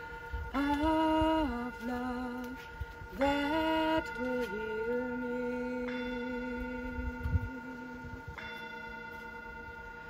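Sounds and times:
singing bowl ringing: 0.0s - 10.0s.

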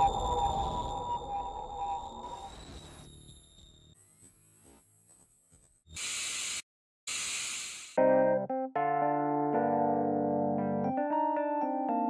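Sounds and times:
thin high ringing tones: 0.0s - 4.0s.

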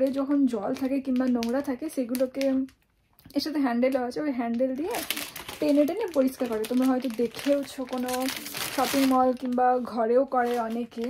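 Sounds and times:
plastic bag crackling: 0.0s - 2.8s, 3.4s - 11.0s
woman talking: 0.0s - 11.0s.

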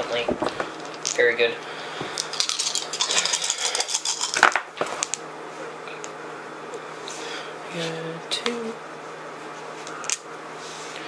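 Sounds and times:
dice clattering on a table: 2.2s - 5.2s.

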